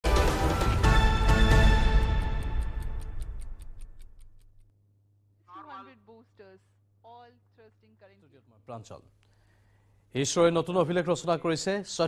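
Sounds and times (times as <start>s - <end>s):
quick even ticking: 2.2s - 4.7s.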